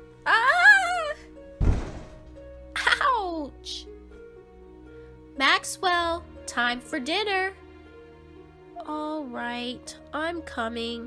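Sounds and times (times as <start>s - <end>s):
soft background music: 0.0s - 11.0s
heavy body thud: 1.6s - 2.4s.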